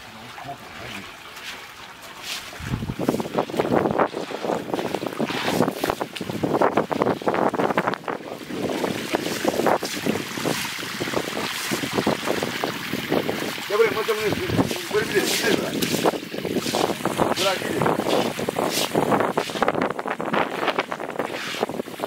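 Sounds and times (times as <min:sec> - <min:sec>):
water splashing on concrete: 0:00.0 - 0:22.0
twig broom sweeping through water: 0:00.8 - 0:06.0, 0:09.2 - 0:10.7, 0:14.6 - 0:19.7, 0:20.6 - 0:21.7.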